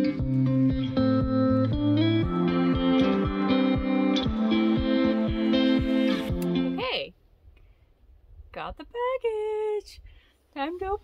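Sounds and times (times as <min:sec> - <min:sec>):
background music with steady beat: 0:00.0 - 0:06.8.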